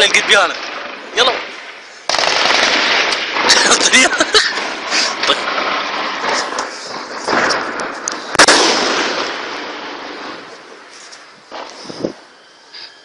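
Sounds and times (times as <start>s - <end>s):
rifle shots: 0.0s - 10.5s
loud gunshot with echo: 2.1s - 4.1s, 7.2s - 10.4s.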